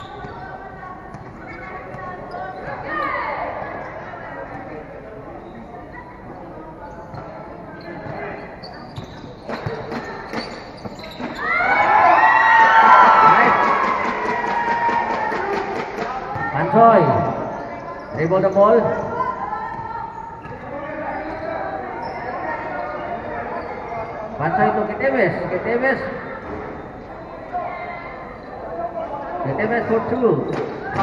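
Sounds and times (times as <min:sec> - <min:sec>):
spectators shouting: 0:11.4 - 0:16.3.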